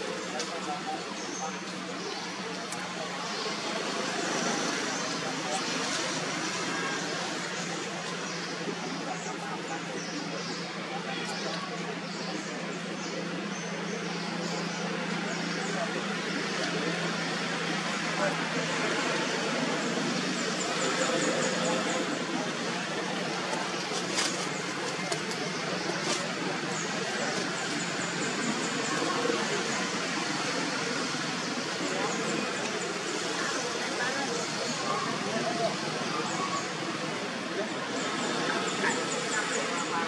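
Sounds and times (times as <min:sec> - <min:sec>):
indistinct voices: 0:00.0 - 0:40.0.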